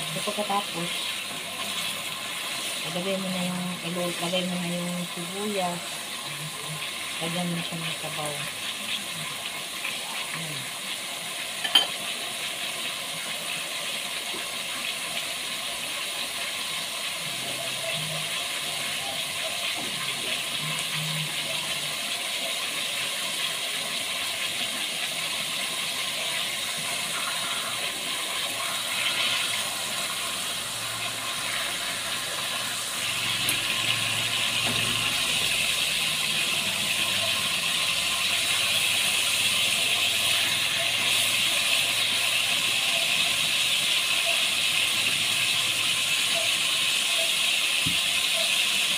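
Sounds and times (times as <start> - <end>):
meat sizzling in sauce: 0.0 - 48.9.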